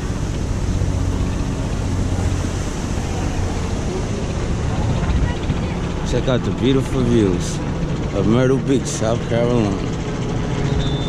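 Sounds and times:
wind rumbling on microphone: 0.0 - 8.2
ocean surf breaking: 0.0 - 11.0.

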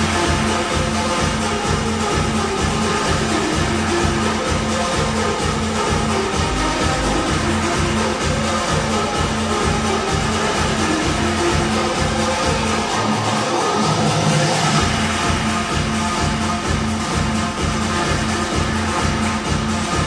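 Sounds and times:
electronic dance music: 0.0 - 20.0.

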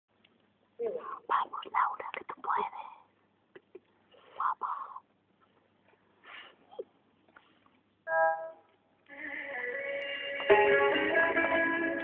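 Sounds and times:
people whispering: 0.8 - 3.1, 4.1 - 5.1.

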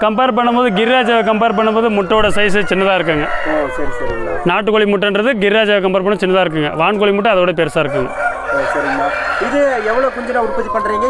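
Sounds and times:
rooster crowing: 0.0 - 4.6, 7.7 - 11.0
man talking: 0.0 - 11.0.

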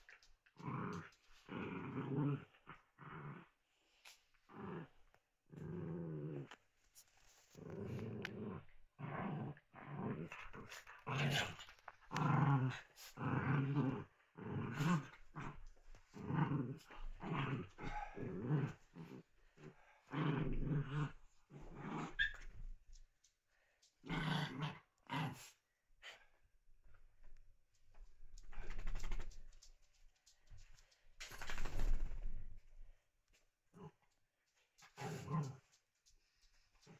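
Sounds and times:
small dogs growling: 0.0 - 6.6, 7.3 - 22.7, 24.0 - 26.3, 33.7 - 34.1, 34.8 - 35.8.

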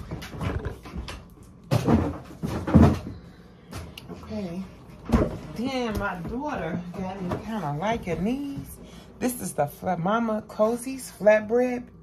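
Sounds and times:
thumps with a clatter: 0.0 - 3.9.

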